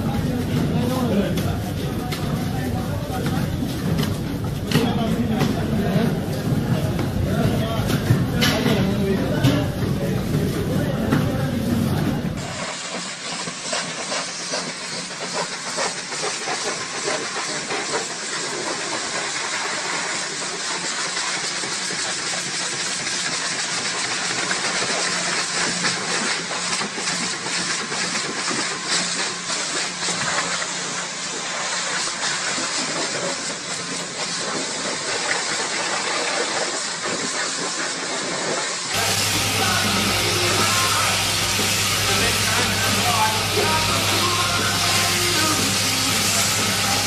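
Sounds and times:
pressure washer water jet hissing: 0.0s - 47.0s.

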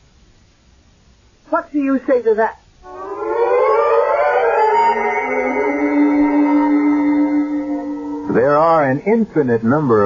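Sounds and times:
dramatic music sting: 2.8s - 8.9s.

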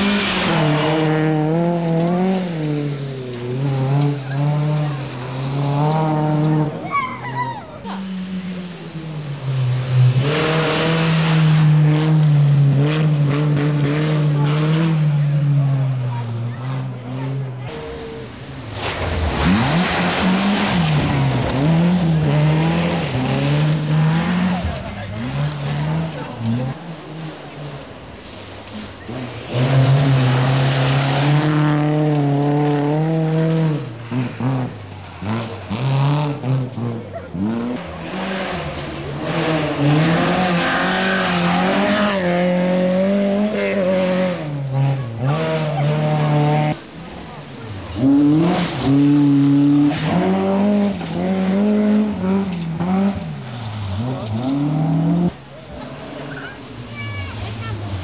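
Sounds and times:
rally cars passing: 0.0s - 58.0s.

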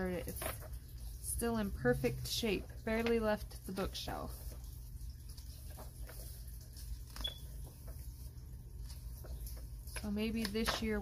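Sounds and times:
paper rustling: 0.0s - 1.7s, 2.3s - 11.0s.

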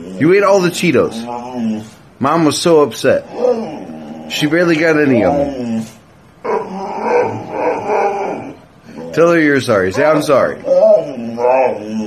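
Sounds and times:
dog grumbling moan: 0.0s - 2.2s, 3.0s - 12.0s.

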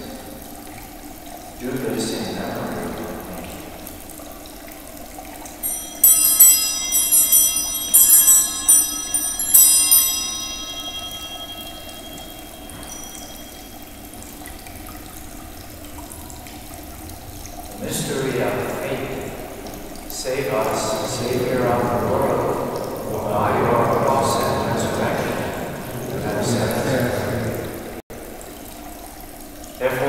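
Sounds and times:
small bells ringing: 5.5s - 15.2s.

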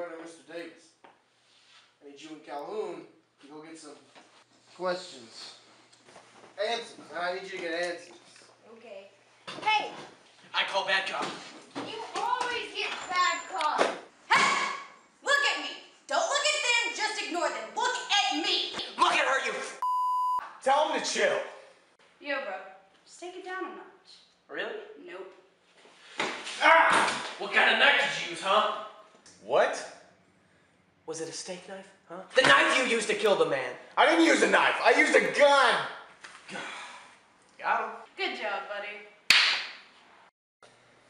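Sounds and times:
censor bleep: 19.8s - 20.4s.

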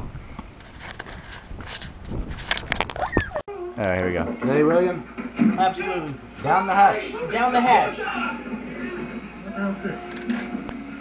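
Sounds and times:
wind buffeting microphone: 0.0s - 3.4s.

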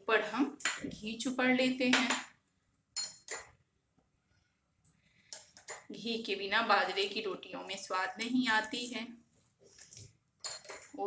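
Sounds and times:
spoon clinking against glass bowl: 3.0s - 3.5s, 10.4s - 11.0s.

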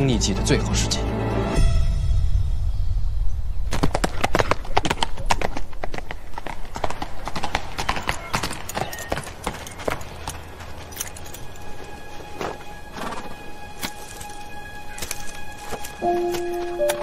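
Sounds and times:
horse hooves clip-clopping: 3.7s - 17.0s.

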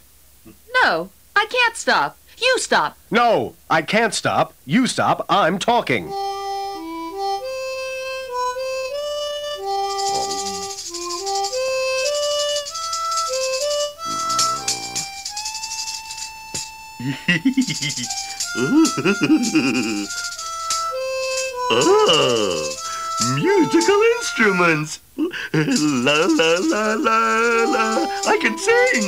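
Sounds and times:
harmonica playing a tune: 6.1s - 24.9s, 25.6s - 29.0s
tambourine jingling: 9.7s - 24.4s, 25.6s - 29.0s
voice-like cries: 14.0s - 15.2s, 17.0s - 20.1s, 21.6s - 24.4s.

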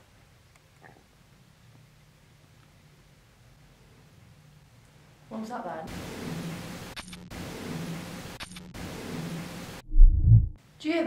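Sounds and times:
loud low boom: 9.8s - 10.6s.

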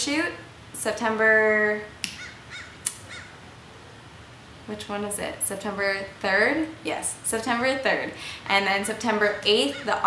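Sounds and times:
bird calling: 2.2s - 3.4s, 9.6s - 10.0s.

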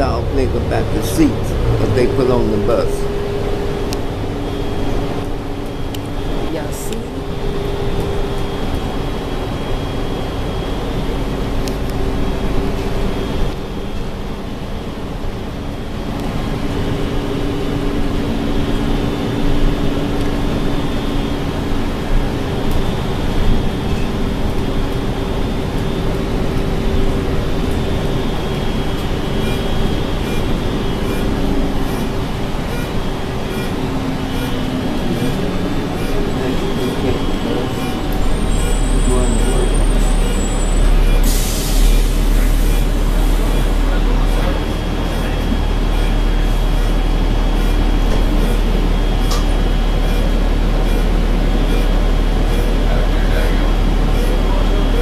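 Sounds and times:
bus engine and road noise: 0.0s - 55.0s.

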